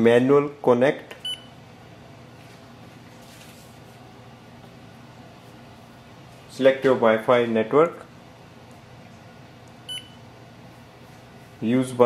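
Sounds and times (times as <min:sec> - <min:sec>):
printer control panel beep: 0:09.9 - 0:10.2.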